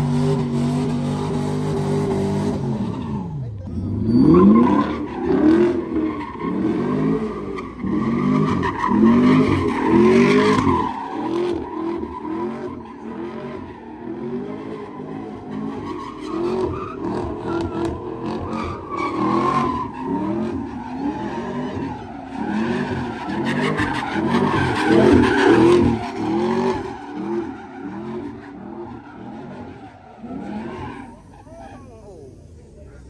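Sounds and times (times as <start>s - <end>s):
car engine revving: 0.0s - 33.0s
tires screeching: 0.0s - 33.0s.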